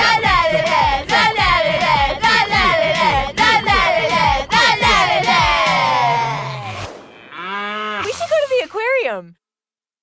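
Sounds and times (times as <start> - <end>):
cartoon moose call: 4.8 - 8.4.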